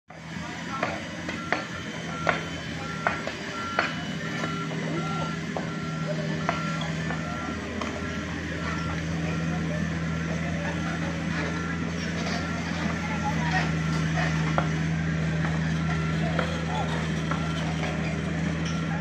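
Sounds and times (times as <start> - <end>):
excavator diesel engine: 0.1 - 19.0
motion alarm beeping: 0.8 - 14.6.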